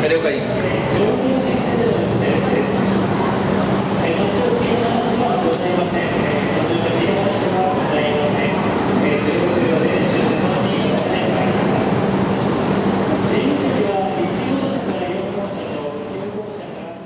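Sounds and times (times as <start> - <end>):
people talking: 0.0 - 17.0.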